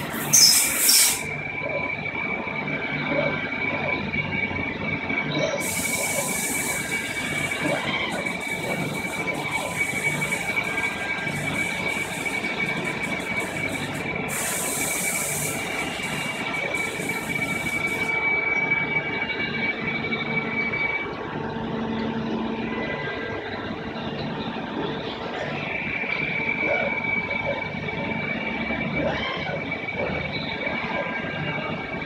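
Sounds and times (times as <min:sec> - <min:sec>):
high-pitched machine whine: 0:00.0 - 0:32.0
low mechanical hum: 0:00.0 - 0:32.0.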